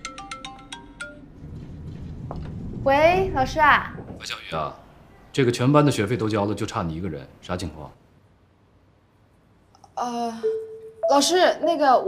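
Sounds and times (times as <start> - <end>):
phone ringtone melody: 0.0 - 1.2, 10.4 - 11.4.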